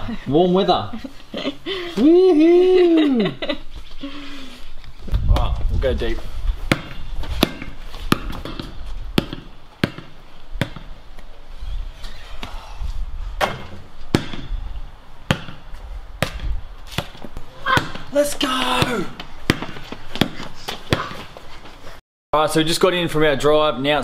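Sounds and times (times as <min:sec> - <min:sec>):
basketball bouncing on concrete: 0:06.6 - 0:11.0, 0:13.4 - 0:14.6, 0:15.3 - 0:21.4.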